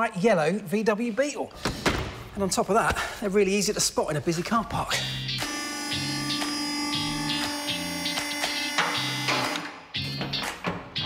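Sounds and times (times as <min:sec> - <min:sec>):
upbeat music with bass and percussion: 0:10.0 - 0:11.0.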